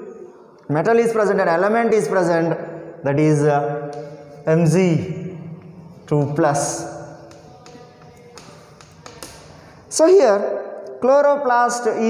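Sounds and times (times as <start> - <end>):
chalk tapping on chalkboard: 3.9 - 4.4, 6.0 - 9.8.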